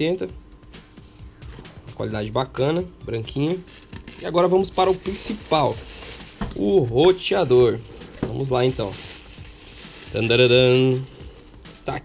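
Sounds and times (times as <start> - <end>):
plastic bag crinkling: 3.6 - 11.8.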